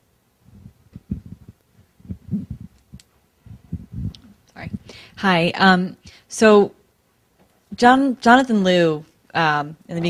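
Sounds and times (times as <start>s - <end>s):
muffled thumps and rumbles: 0.5s - 4.9s.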